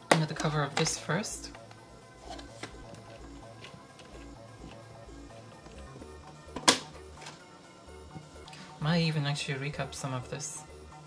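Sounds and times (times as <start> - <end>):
background music with steady beat: 0.0 - 11.0
plastic casing snapping apart: 6.6 - 7.4.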